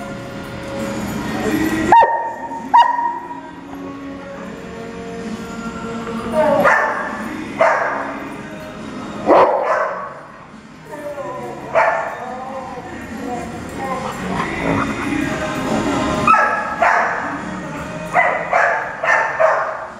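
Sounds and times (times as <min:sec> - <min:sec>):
dogs barking: 0:01.9 - 0:03.4, 0:06.4 - 0:08.2, 0:09.2 - 0:10.3, 0:11.6 - 0:12.4, 0:13.4 - 0:15.5, 0:16.2 - 0:17.4, 0:18.1 - 0:19.9.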